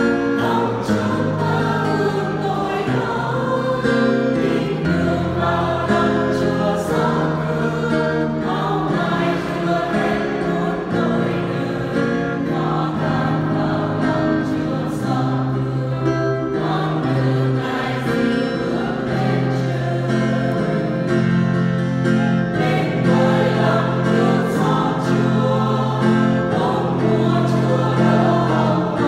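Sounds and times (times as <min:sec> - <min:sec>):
church choir singing a hymn: 0:00.0 - 0:29.0.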